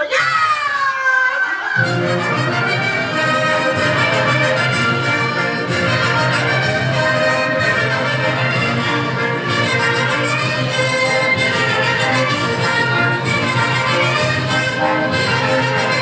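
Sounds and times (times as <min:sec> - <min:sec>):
brass band music: 0:01.8 - 0:16.0.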